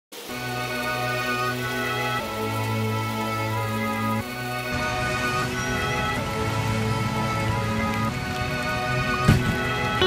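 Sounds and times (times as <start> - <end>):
instrumental background music: 0.2 - 10.0
rain pattering on concrete: 0.2 - 10.0.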